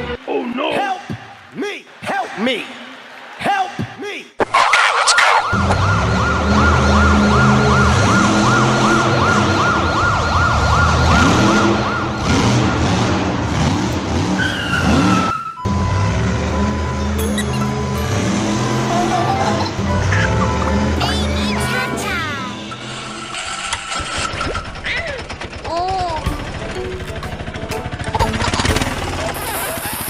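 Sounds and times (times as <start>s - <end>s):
fast warbling siren: 4.4s - 13.1s, 14.4s - 23.2s
steady high beep: 15.6s - 18.9s
music with heavy bass: 15.9s - 22.9s, 26.2s - 30.0s.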